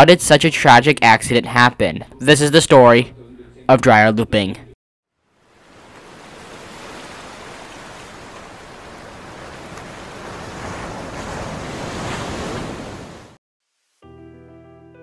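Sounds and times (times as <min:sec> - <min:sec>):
ocean waves breaking: 0:05.3 - 0:13.4.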